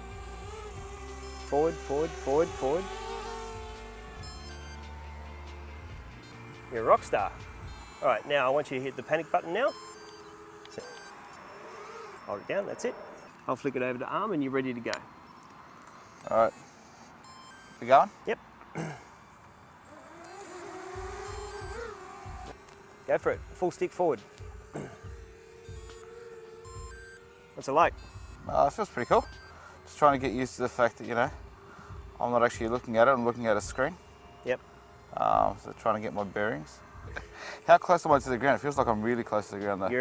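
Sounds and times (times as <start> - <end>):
background music: 0.0 - 11.0, 27.8 - 40.0
quadcopter motors buzzing: 0.0 - 40.0.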